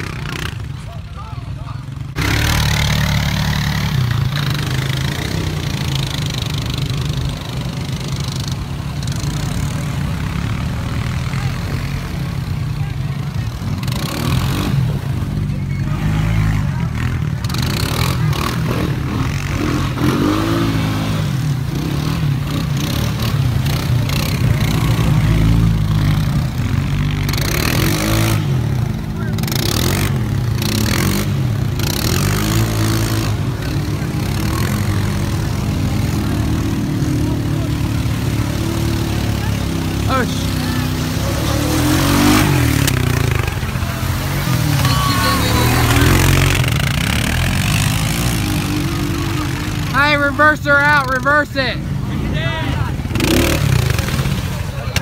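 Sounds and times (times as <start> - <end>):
atv engines running: 0.0 - 55.0
water splashing: 19.8 - 51.1, 51.7 - 55.0
people shouting: 43.4 - 46.6.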